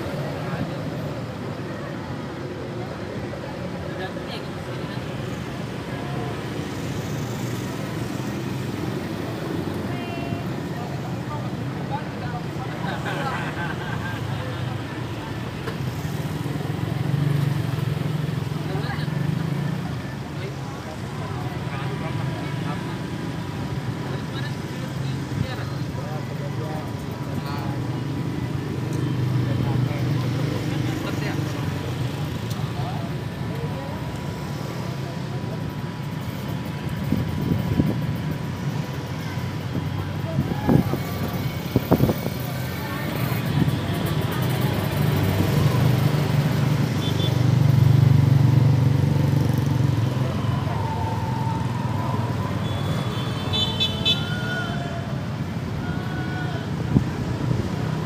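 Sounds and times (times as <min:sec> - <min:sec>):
crowd voices: 0:00.0 - 0:58.0
engines and street traffic rumble: 0:00.0 - 0:58.0.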